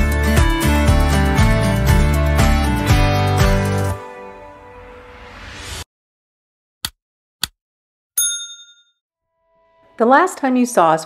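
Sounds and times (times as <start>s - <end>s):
bright bell ding: 8.2s - 9.0s.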